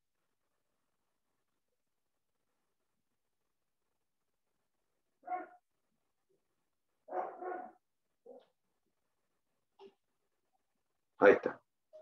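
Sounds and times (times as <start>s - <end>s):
dog barking: 5.2s - 5.6s, 7.1s - 8.5s.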